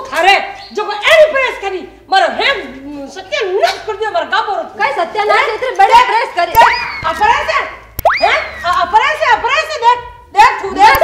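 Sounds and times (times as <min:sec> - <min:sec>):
people talking: 0:00.0 - 0:11.0
cartoon click: 0:08.0 - 0:08.2
swooping cartoon whistle: 0:08.0 - 0:08.8.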